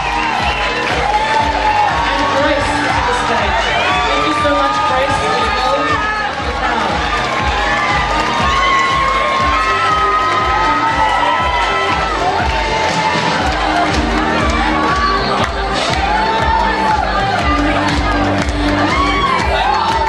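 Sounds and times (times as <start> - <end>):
audience cheering: 0.0 - 20.0
music with steady beat: 0.0 - 20.0.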